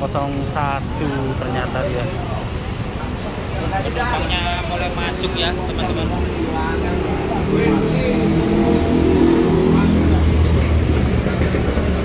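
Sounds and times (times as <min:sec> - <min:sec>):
bus diesel engine rumbling: 0:00.0 - 0:12.0.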